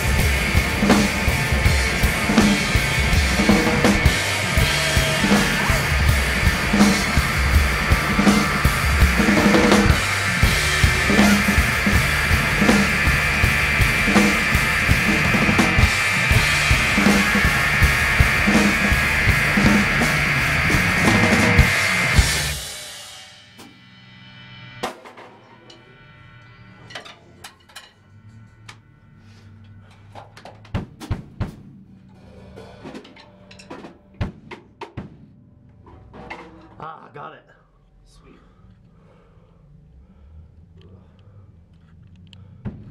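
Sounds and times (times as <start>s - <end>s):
rock drum kits playing: 0.0s - 27.4s.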